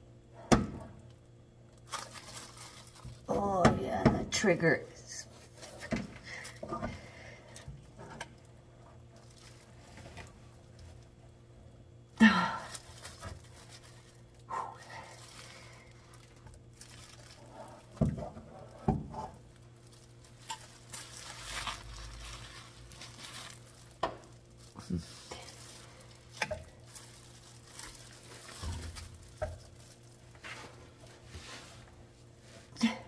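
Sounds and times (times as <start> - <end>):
rag or paper rustling: 20.1 - 23.9.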